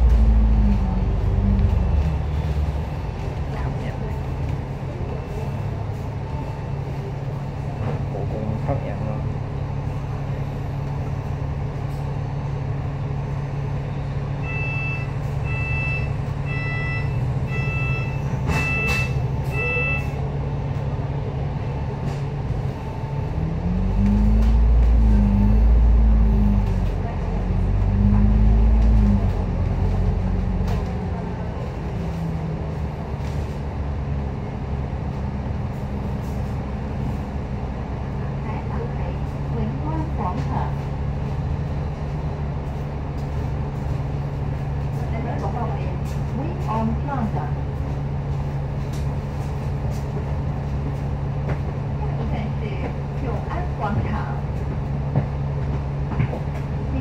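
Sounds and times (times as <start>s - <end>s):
bus engine revving: 0.0s - 57.0s
bus warning beeps: 1.2s - 7.6s, 13.4s - 20.5s, 21.5s - 23.7s.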